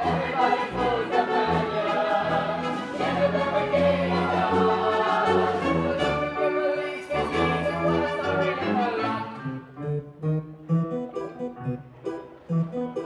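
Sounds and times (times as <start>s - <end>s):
orchestra and keyboards playing: 0.0s - 13.0s.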